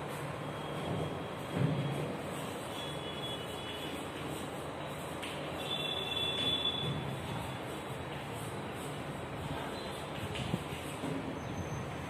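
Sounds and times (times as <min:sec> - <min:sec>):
classroom room noise rumble: 0:00.0 - 0:12.0
chalk ticking on blackboard: 0:03.2 - 0:11.0.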